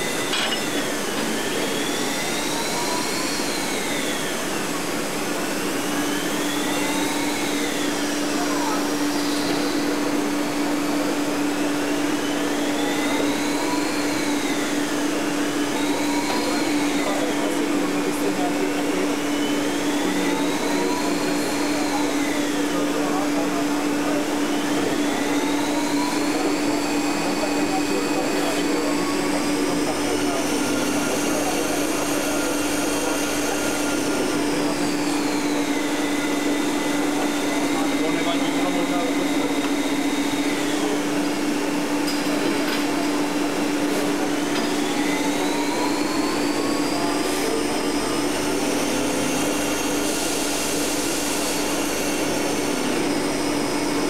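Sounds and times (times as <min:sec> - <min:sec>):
lathe humming: 0:00.0 - 0:54.0
rising and falling whines: 0:00.0 - 0:54.0.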